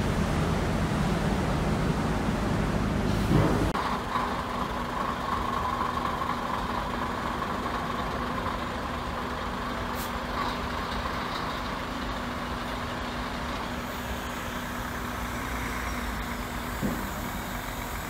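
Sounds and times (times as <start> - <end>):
diesel truck engine running: 0.0 - 18.0.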